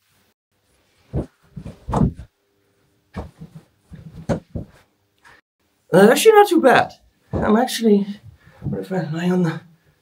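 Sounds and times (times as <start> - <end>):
fabric and cushions rustling: 0.6 - 2.3, 3.1 - 4.9
soft thumps on sofa: 1.1 - 2.3, 3.2 - 4.8.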